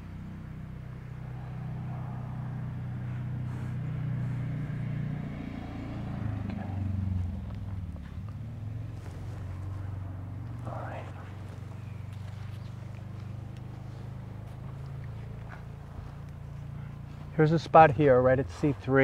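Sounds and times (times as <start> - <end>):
vehicle engine drone: 0.0 - 19.0.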